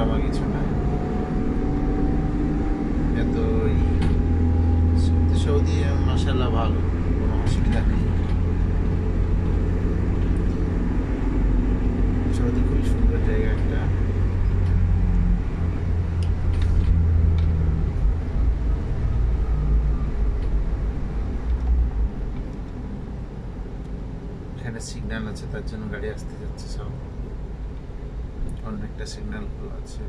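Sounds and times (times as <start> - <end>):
car engine rumble: 0.0 - 30.0
road noise inside car: 0.0 - 30.0.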